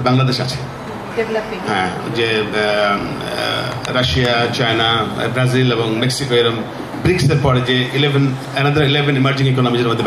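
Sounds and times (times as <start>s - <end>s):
man talking over loudspeaker: 1.7s - 10.0s.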